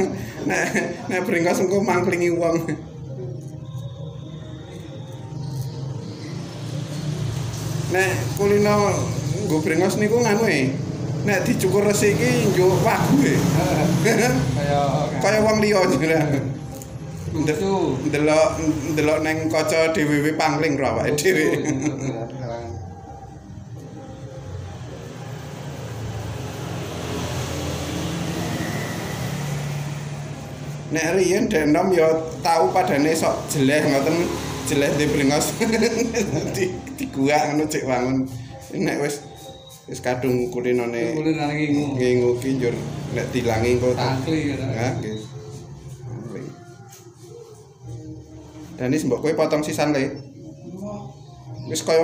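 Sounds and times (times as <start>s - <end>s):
vehicle engine hum passing: 0.0s - 20.8s, 21.6s - 48.8s.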